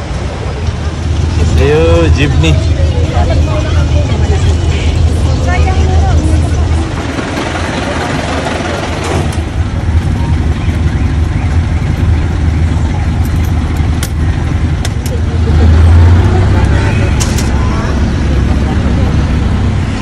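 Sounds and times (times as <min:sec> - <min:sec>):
people talking: 0:00.0 - 0:09.2, 0:14.8 - 0:20.0
vehicle engine droning: 0:00.0 - 0:20.0.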